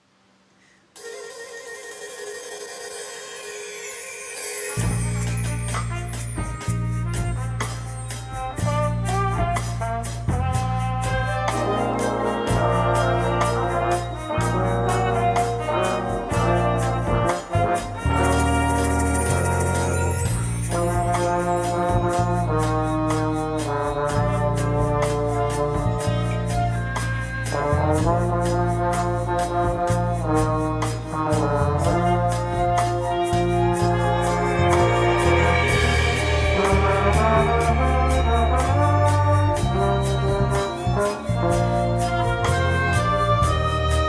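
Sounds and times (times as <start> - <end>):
orchestra holding sustained notes: 11.0 - 28.9, 30.8 - 44.0.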